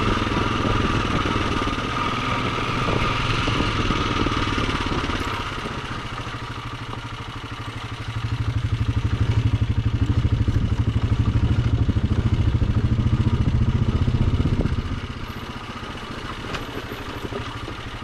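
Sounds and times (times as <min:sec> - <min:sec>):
atv engine revving: 0:00.0 - 0:18.0.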